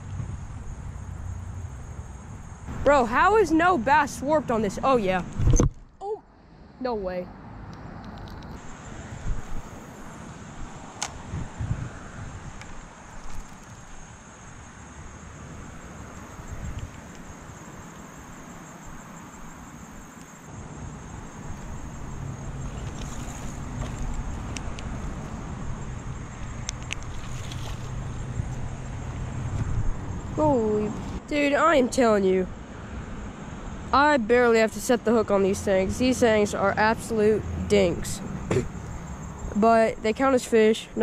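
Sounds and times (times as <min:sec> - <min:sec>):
sharp clicks: 0:07.7 - 0:08.6
wind buffeting microphone: 0:09.1 - 0:13.6, 0:21.0 - 0:32.6.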